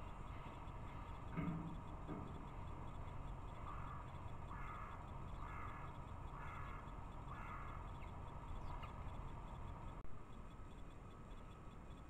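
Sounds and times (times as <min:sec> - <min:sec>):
crow cawing: 0:03.5 - 0:08.1.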